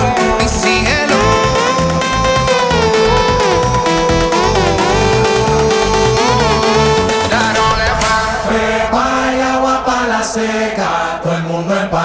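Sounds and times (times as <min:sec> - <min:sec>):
latin party music: 0:00.0 - 0:11.8.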